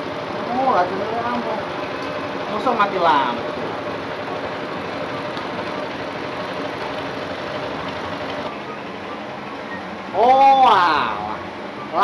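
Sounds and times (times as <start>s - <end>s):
mechanical engine drone: 0.0s - 12.0s.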